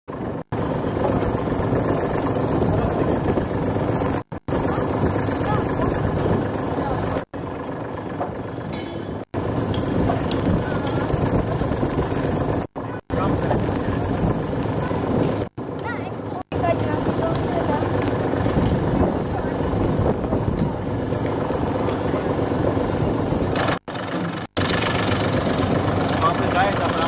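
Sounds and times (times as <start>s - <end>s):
loud outdoor background noise: 0.1s - 27.0s.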